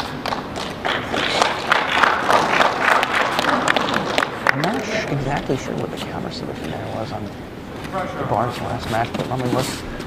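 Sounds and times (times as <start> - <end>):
spectators clapping: 0.0 - 5.1.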